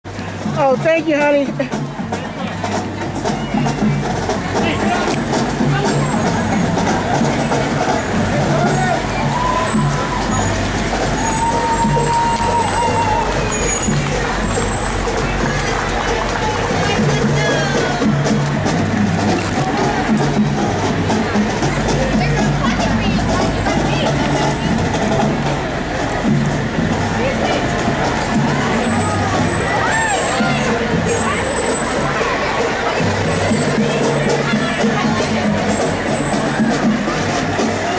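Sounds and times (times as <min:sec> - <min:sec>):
bystanders talking: 0:00.0 - 0:37.9
crowd voices: 0:00.0 - 0:37.9
low engine hum: 0:00.1 - 0:37.9
marching bass drums: 0:00.1 - 0:37.9.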